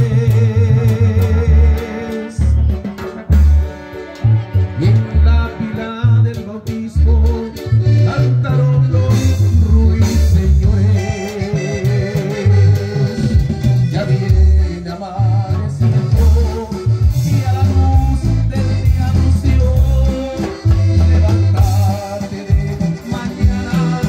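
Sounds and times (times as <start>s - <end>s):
band music with strong bass line: 0.0s - 24.0s.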